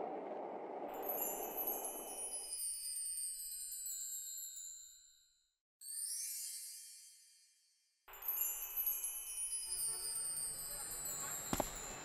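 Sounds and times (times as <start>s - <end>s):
shimmering wind chimes: 0.9s - 12.0s.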